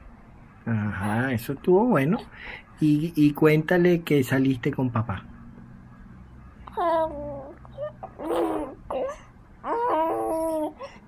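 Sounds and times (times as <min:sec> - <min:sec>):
baby cooing: 0:06.6 - 0:11.0.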